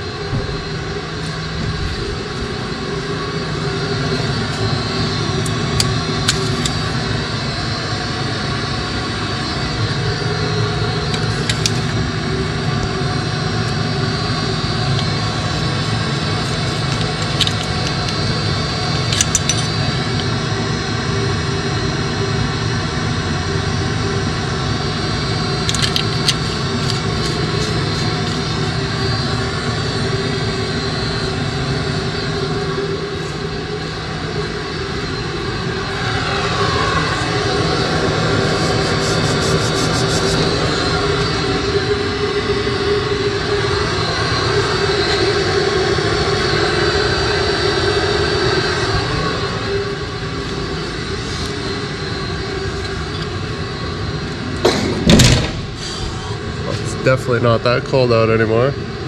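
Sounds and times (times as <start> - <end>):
loud mechanical engine drone: 0.0 - 59.0.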